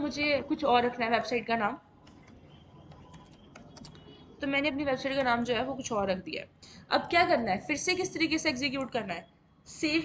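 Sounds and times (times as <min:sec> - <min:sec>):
keyboard typing clicks: 0:02.0 - 0:04.2.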